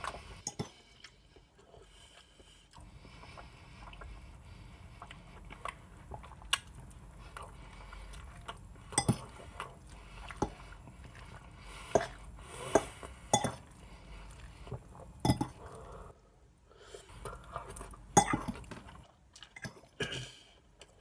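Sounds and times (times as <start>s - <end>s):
quiet chewing: 0.0s - 21.0s.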